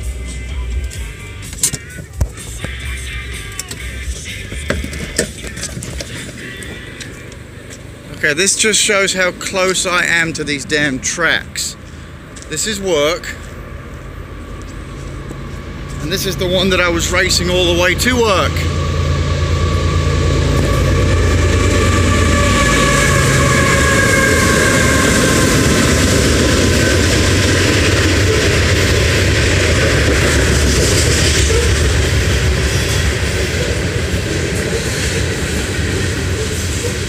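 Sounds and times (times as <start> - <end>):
train passing: 0.0 - 37.0
train whine falling in pitch: 12.9 - 37.0.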